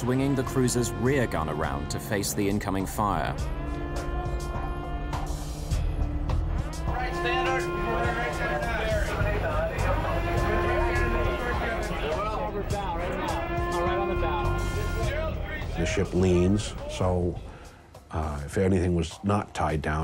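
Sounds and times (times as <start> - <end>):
indistinct voices: 0.0 - 17.6
background music with held tones: 0.0 - 20.0.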